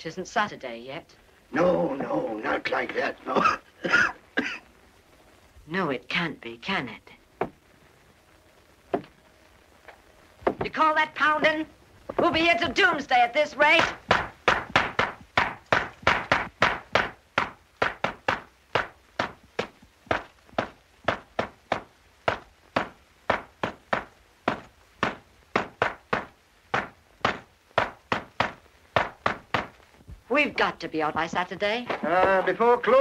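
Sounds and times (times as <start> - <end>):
hand tools pounding on rock: 13.8 - 29.8.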